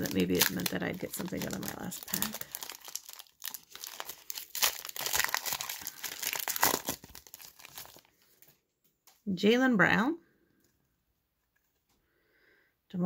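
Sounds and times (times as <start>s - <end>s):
foil wrapper crinkling: 0.0s - 8.5s.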